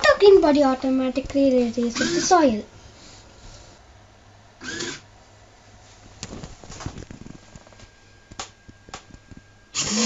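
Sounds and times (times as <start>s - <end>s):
servo motor whirring: 2.0s - 2.3s, 4.6s - 5.0s, 9.8s - 10.0s.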